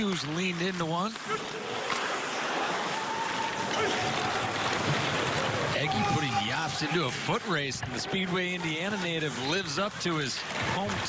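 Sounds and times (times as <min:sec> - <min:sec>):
stick and puck clicks on ice: 0:00.0 - 0:05.8
crowd noise: 0:00.0 - 0:11.0.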